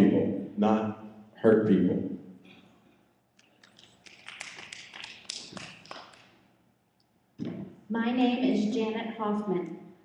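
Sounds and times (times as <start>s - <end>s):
light applause: 3.6s - 6.3s.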